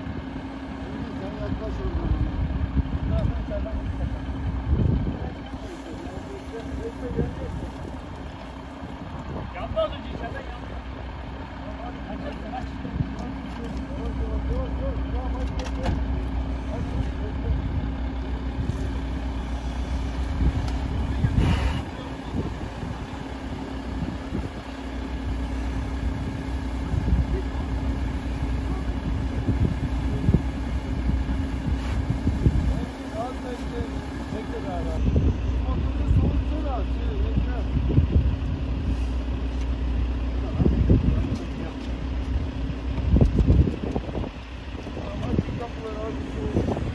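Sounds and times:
fire engine humming: 0.0 - 46.9
people's voices: 0.7 - 46.9
hose spraying water: 5.5 - 8.8, 18.6 - 35.0
short burst of hiss: 21.4 - 21.9.

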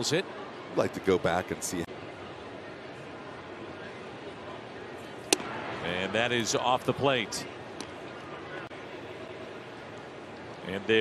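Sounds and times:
ballpark crowd noise: 0.0 - 11.0
baseball popping into catcher's mitt: 5.3 - 5.5.

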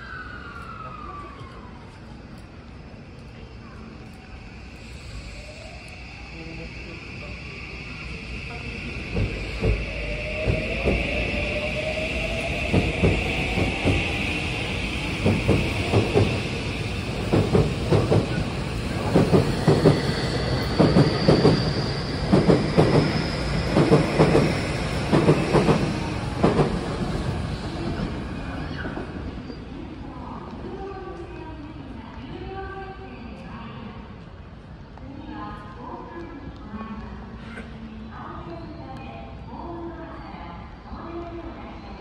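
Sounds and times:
electric train motor whine: 4.0 - 27.0.

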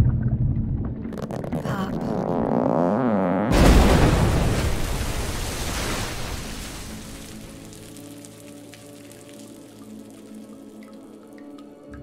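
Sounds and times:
explosion blast: 3.5 - 8.4.

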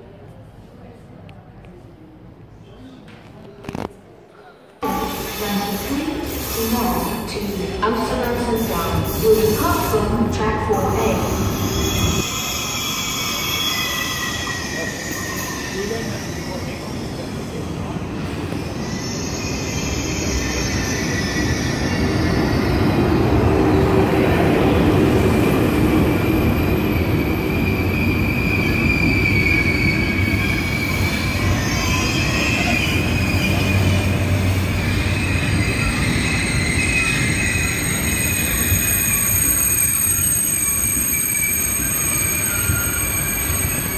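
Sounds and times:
train rumbling past: 4.8 - 43.9
high squealing from running gear: 27.6 - 34.2, 34.8 - 43.9.

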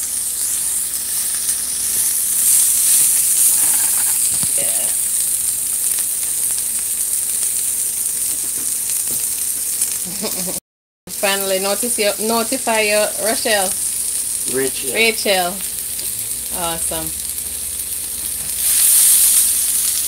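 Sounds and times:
pork and onions sizzling in a pan: 0.0 - 20.0.

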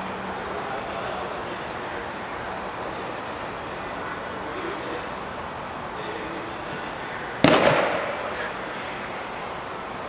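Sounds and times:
baseball smacking into mitt: 7.4 - 8.3.

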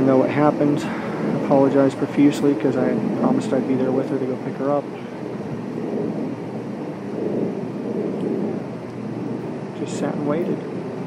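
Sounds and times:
room rumble and hiss: 0.0 - 11.0.

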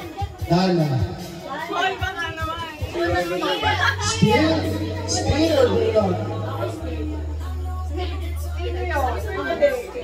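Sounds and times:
background music: 0.0 - 10.0
people talking: 1.4 - 10.0
low bass note: 4.0 - 7.3.

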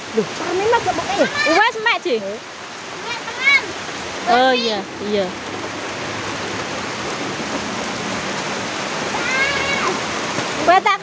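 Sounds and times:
steady rain: 0.0 - 11.0.

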